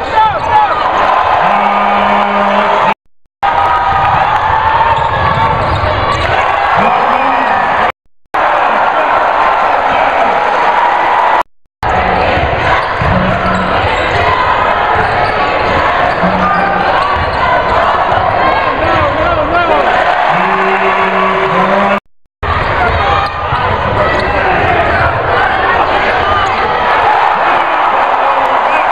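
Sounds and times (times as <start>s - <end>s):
crowd voices and shouts: 0.0s - 28.9s.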